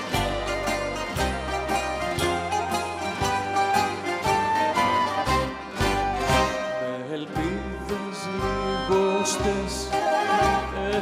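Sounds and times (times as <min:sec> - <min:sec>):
rhythmic bass line: 0:00.0 - 0:06.6
band playing: 0:00.0 - 0:11.0
violin melody: 0:00.0 - 0:11.0.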